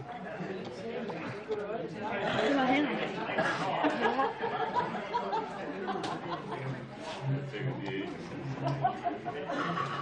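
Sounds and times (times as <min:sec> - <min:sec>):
indistinct group chatter: 0:00.0 - 0:10.0.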